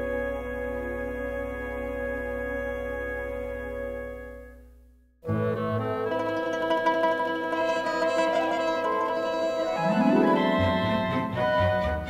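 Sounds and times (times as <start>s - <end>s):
strings holding sustained notes: 7.8s - 12.0s.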